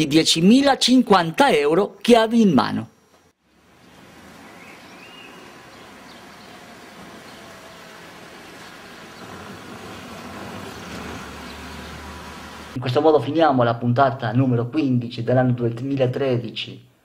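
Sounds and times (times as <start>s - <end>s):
car driving past: 3.6s - 12.8s.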